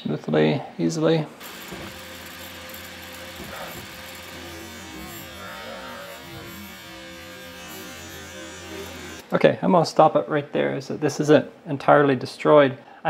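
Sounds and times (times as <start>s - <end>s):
lathe motor hum with whining tones: 1.4s - 9.2s.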